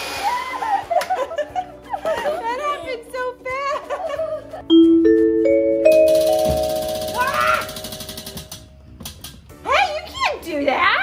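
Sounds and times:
bell-like chime: 4.7s - 8.3s.

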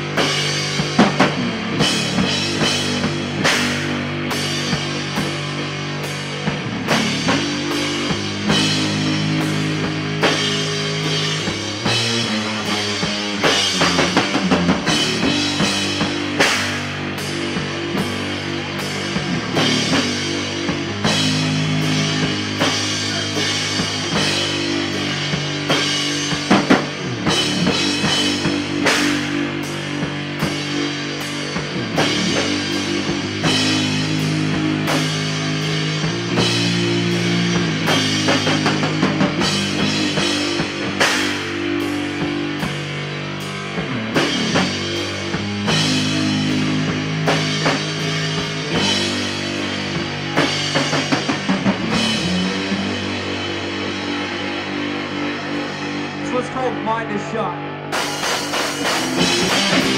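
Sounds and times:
drum kit with cymbals: 0.0s - 59.9s
electric guitar chords: 0.0s - 59.9s.

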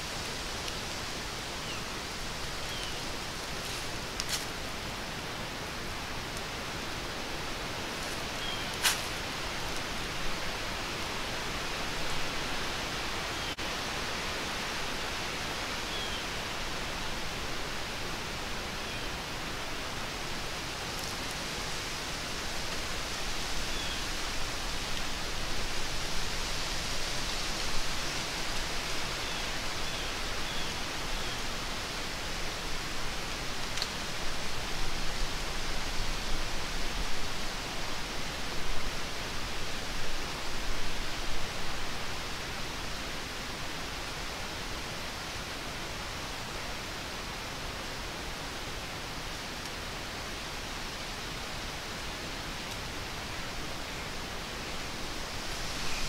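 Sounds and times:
steady hissing noise: 0.0s - 56.0s.

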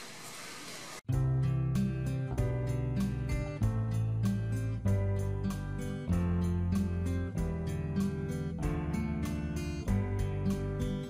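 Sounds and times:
instrumental background music: 1.1s - 11.0s.

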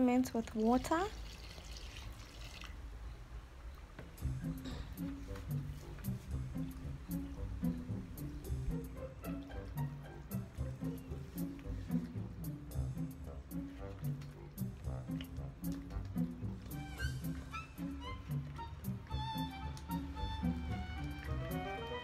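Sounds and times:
water pouring from bucket: 0.4s - 2.8s
background music with beat: 4.0s - 22.0s.

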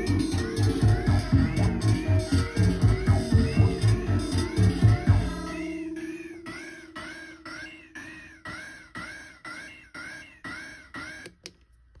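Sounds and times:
synthesizer notes sweeping in pitch: 0.0s - 10.4s.

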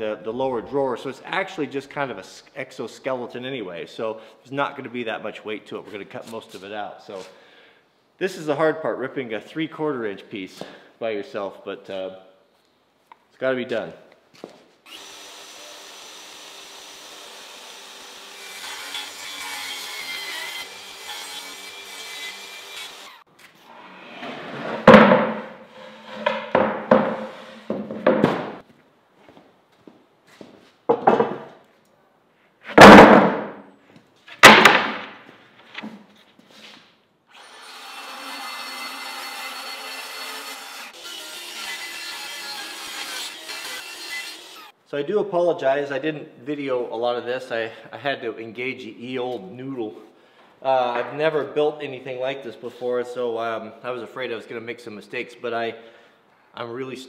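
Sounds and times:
wooden boards knocking: 24.7s - 28.6s, 30.9s - 31.5s, 32.8s - 33.5s, 34.4s - 35.2s
table saw ripping plywood: 32.7s - 33.5s, 34.3s - 35.2s.

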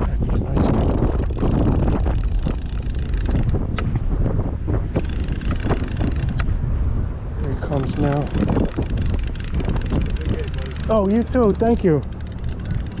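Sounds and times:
wind buffeting the microphone: 0.0s - 13.0s.

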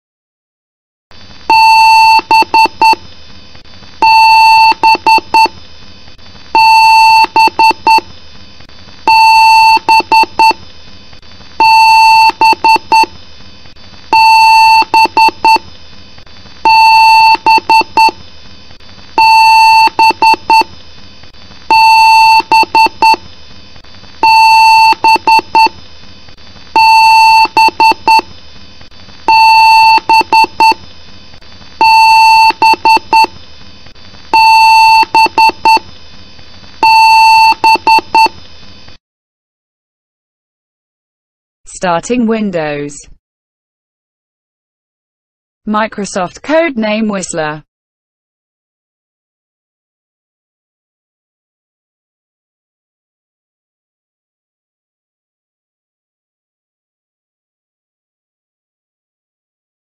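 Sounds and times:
faint steady hum: 1.1s - 39.0s.

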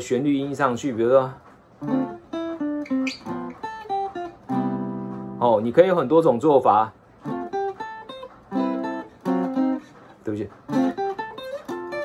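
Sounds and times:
jazz guitar playing: 1.8s - 6.2s, 7.1s - 12.0s.

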